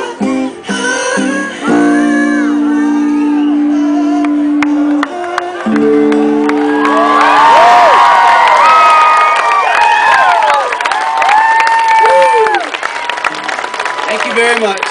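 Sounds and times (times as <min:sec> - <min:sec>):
audience clapping: 0:04.1 - 0:14.9
audience cheering and whooping: 0:04.8 - 0:14.8.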